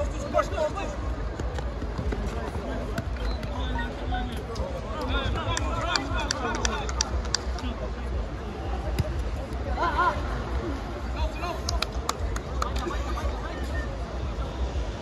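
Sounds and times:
spectators chattering: 0.0 - 15.0
ball being kicked: 8.9 - 9.3.

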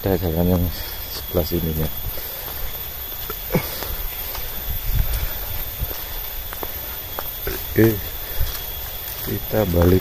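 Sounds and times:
footsteps on dry leaves: 0.0 - 10.0.

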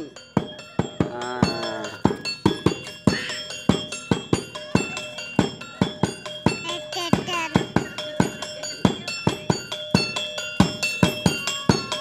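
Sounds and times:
drum beat: 0.0 - 12.0
ringing metallic tones: 0.0 - 12.0.

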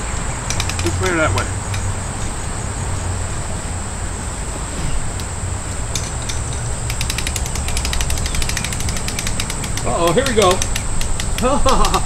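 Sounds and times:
umbrella crank ratcheting clicks: 0.5 - 1.9, 5.9 - 12.0.

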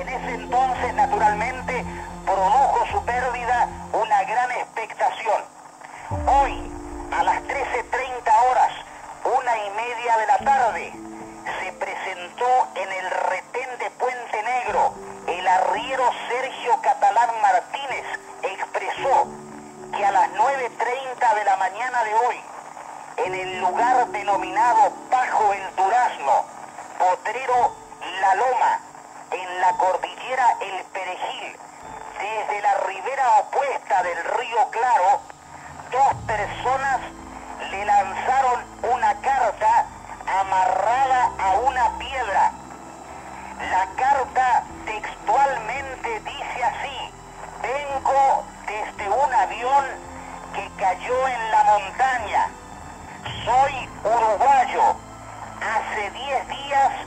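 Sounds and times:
person talking like a radio: 0.0 - 19.3, 19.9 - 22.4, 23.2 - 26.4, 27.0 - 31.6, 32.2 - 35.2, 35.9 - 42.6, 43.6 - 50.0, 50.6 - 52.5, 53.2 - 55.0, 55.6 - 57.0
quiet background music: 0.0 - 57.0.

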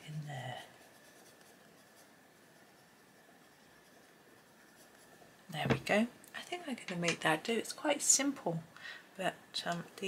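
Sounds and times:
coloured pencil shading on paper: 0.0 - 5.4.

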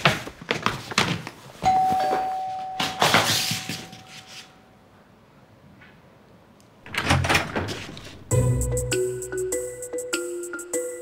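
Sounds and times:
door opening with thud and clatter: 6.8 - 8.3.

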